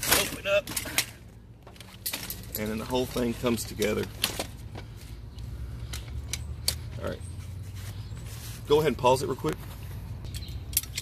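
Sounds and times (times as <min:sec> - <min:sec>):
frame tubes snapping together: 0:00.0 - 0:03.2, 0:10.3 - 0:11.0.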